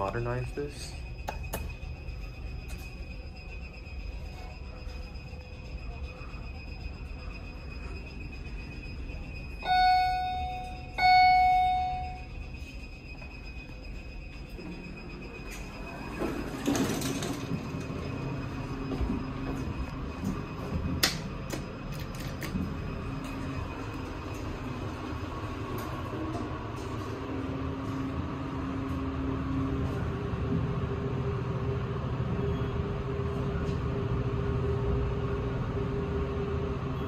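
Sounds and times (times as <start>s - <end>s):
elevator arrival chime dinging: 0.0s - 21.9s.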